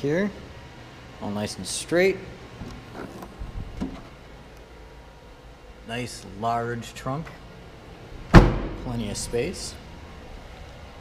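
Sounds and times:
trunk lid thump: 8.3 - 8.9.

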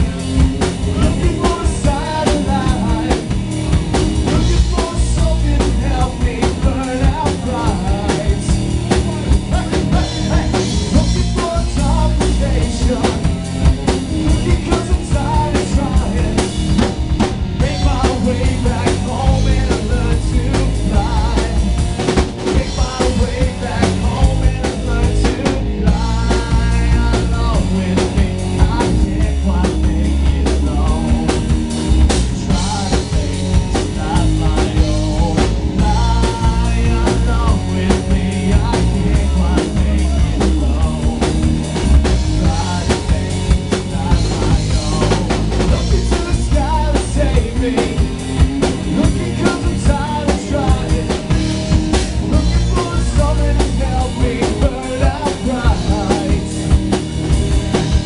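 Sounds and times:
rock band playing live: 0.0 - 58.0.

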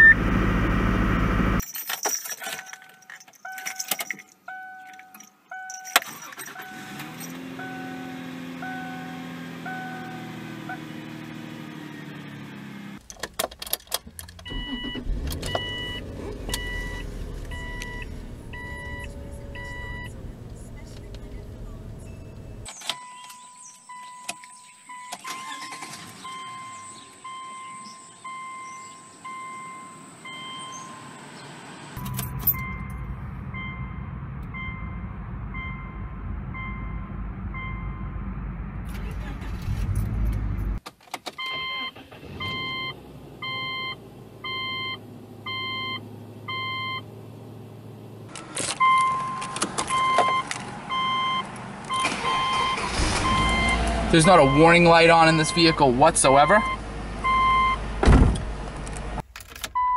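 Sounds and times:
car engine running: 0.0 - 1.6, 14.0 - 22.7, 30.6 - 40.8
dashboard warning chime: 2.5 - 10.9, 14.4 - 31.2, 32.0 - 38.2, 48.8 - 57.8.

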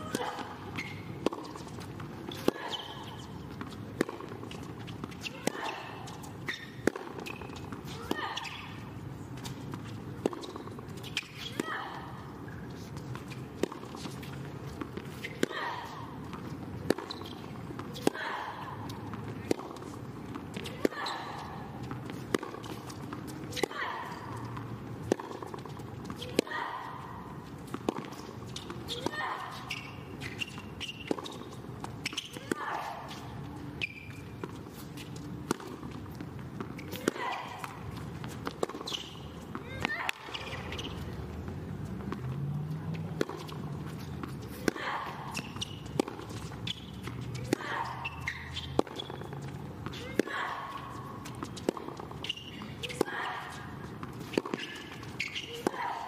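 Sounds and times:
tennis ball struck by rackets: 0.0 - 8.8, 9.4 - 11.9, 12.5 - 27.0, 27.6 - 33.2, 33.8 - 41.2, 42.0 - 56.0
low crowd background: 0.0 - 56.0.

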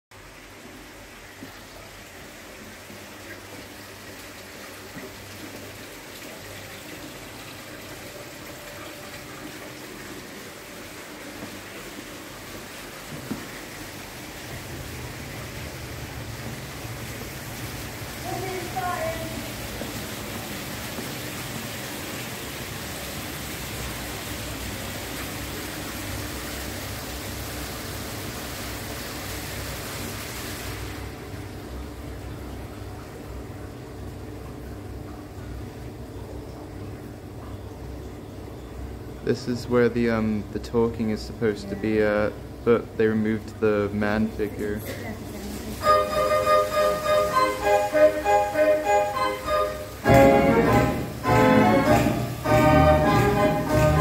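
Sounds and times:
running water rushing: 0.1 - 37.4, 39.0 - 54.0.

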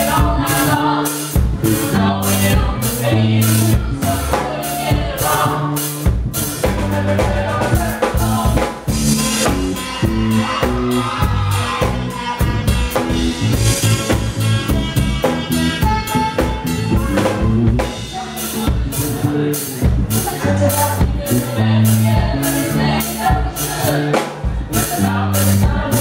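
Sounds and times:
drum kit beat: 0.0 - 26.0
electric bass: 0.0 - 26.0
voices singing: 0.0 - 26.0.

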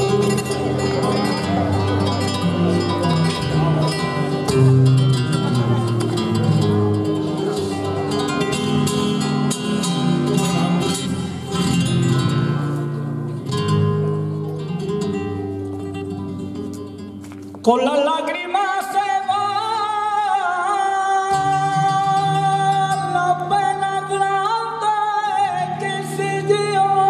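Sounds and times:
flamenco guitar playing: 0.0 - 27.0.

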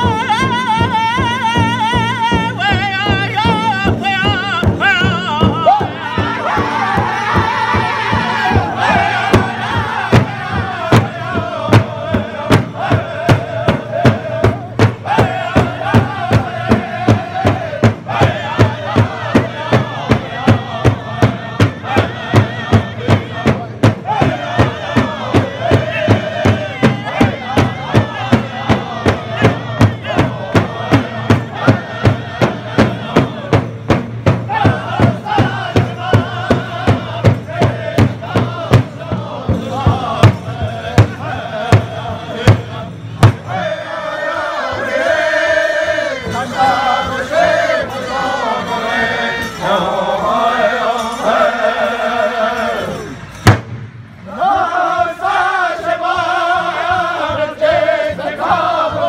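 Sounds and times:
large hide drum beating: 0.0 - 48.0, 53.4 - 54.7
group singing: 0.0 - 53.6, 54.2 - 59.0.

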